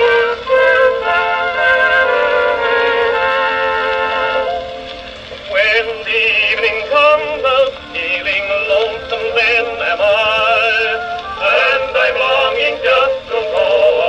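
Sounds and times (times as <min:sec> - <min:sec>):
old phonograph record music: 0:00.0 - 0:14.0.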